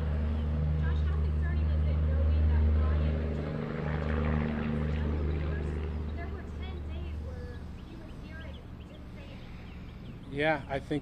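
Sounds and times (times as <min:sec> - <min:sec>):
low engine drone: 0:00.0 - 0:11.0.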